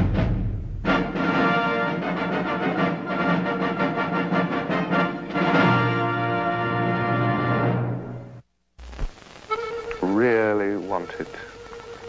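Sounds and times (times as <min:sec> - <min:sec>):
orchestral trailer music: 0:00.0 - 0:08.4.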